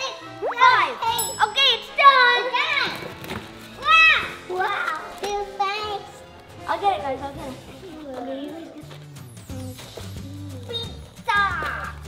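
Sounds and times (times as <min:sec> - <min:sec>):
excited children's voices: 0:00.0 - 0:12.0
upbeat children's music: 0:00.0 - 0:12.0
short bright jingle: 0:01.1 - 0:02.0.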